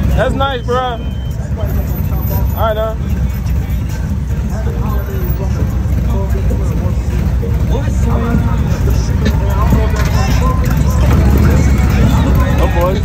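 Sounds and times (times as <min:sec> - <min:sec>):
background music: 0:00.0 - 0:13.0
motorcycles idling: 0:00.0 - 0:13.0
background voices: 0:01.1 - 0:13.0.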